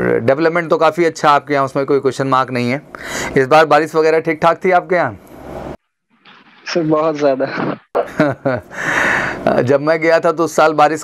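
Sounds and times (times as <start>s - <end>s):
breathy exhale: 3.0s - 3.4s, 8.7s - 9.4s
man speaking: 6.3s - 7.9s
man laughing: 7.2s - 8.8s.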